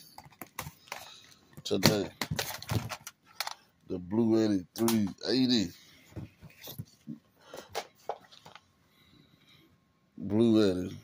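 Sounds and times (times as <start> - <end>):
paper handling clicks and rustles: 0.0 - 3.6.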